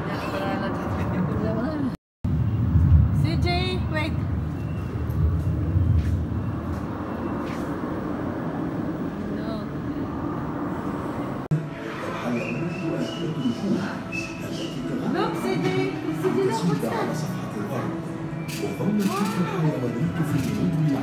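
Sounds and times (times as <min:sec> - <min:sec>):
faint voices: 0:11.1 - 0:21.0.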